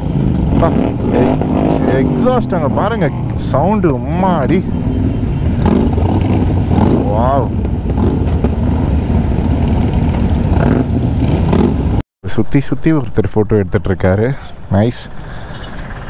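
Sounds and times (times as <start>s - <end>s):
motorcycle engines riding: 0.0s - 12.0s, 13.0s - 16.0s
people talking: 0.6s - 4.7s, 7.0s - 7.6s, 12.2s - 15.1s.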